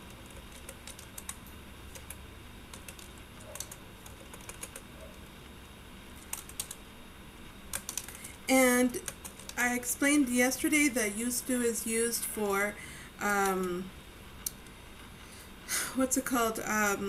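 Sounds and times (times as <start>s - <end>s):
typing on a computer keyboard: 0.0s - 4.9s, 6.2s - 6.8s, 7.7s - 9.6s.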